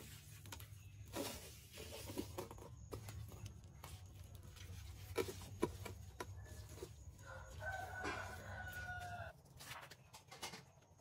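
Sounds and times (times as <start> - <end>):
rooster crowing: 7.2 - 9.4.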